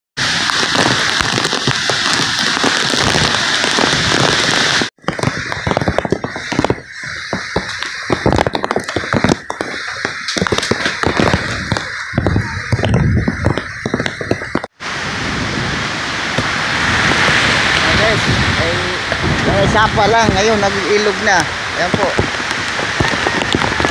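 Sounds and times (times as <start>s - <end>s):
heavy rain: 0.2s - 23.9s
wind buffeting microphone: 0.2s - 23.9s
sharp cracks and knocks: 0.4s - 14.8s, 21.9s - 23.9s.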